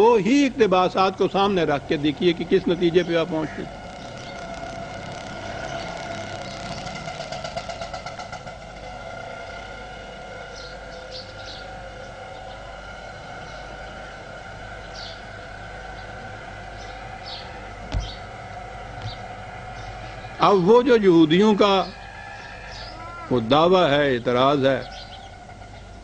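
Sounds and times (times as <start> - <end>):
background hum with whining tones: 0.0 - 26.0
fluttering motor sound: 3.8 - 7.6.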